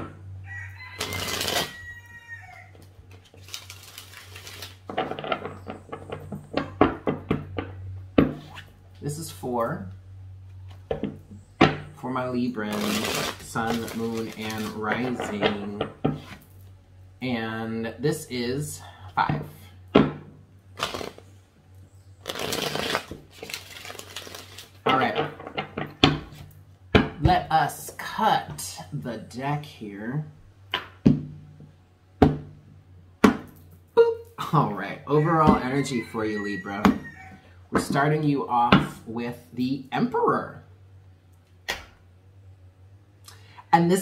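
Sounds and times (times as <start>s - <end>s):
rooster crowing: 0.4s - 2.9s, 35.1s - 37.6s
cards being shuffled: 3.1s - 5.6s, 12.7s - 15.4s, 20.8s - 21.3s, 22.2s - 25.0s.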